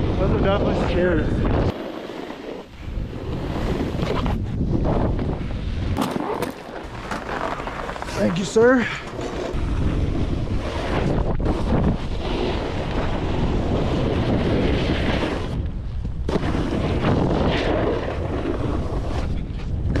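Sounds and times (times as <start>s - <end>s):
wind buffeting microphone: 0.0s - 1.8s, 2.6s - 7.1s, 8.1s - 20.0s
snowboard scraping over snow: 0.0s - 20.0s.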